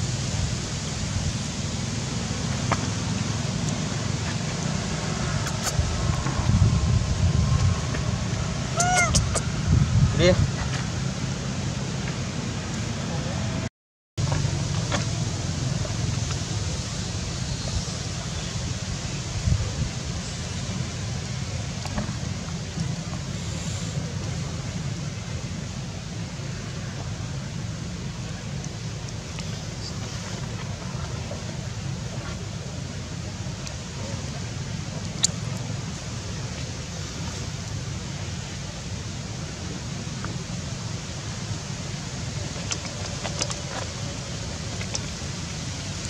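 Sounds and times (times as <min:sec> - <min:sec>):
low rumble: 0:03.2 - 0:11.8.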